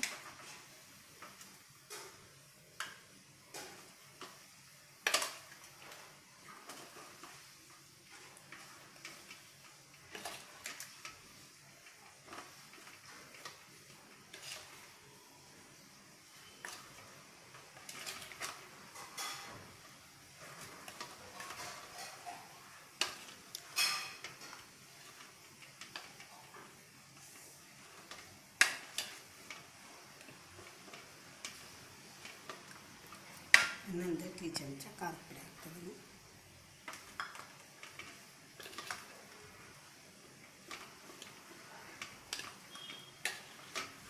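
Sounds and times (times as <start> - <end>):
spoon scraping metal bowl: 20.4 - 25.2, 42.2 - 44.0.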